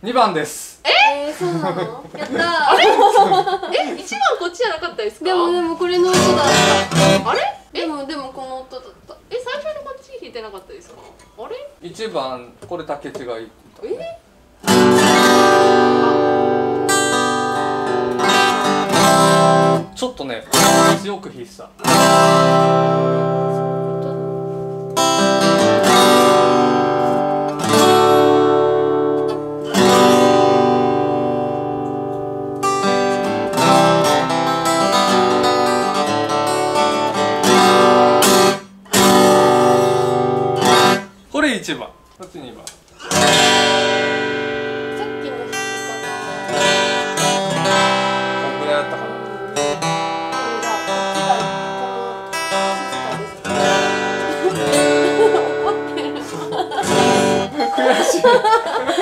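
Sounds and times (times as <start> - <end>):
acoustic guitar strummed hard: 6.0 - 7.4, 14.5 - 21.1, 21.7 - 41.2, 43.0 - 58.8.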